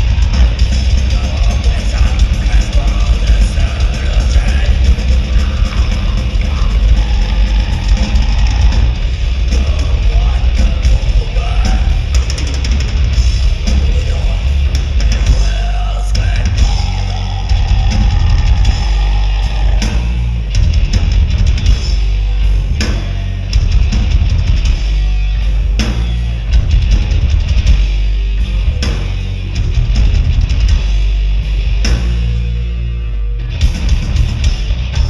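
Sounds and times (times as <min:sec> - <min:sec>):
live heavy metal band: 0:00.0 - 0:35.0.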